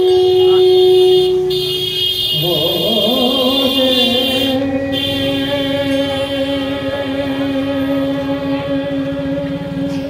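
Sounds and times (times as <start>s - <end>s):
sustained accompanying tone: 0.0s - 10.0s
person singing ornamented melody: 2.3s - 10.0s.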